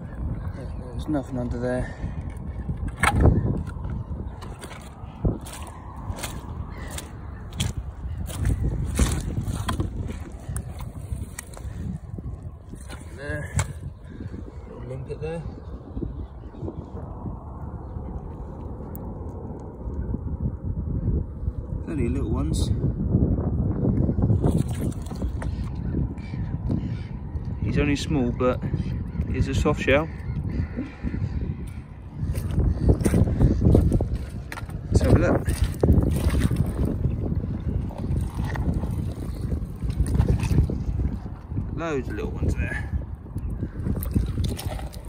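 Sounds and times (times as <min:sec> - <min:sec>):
wind buffeting microphone: 0:00.0 - 0:45.0.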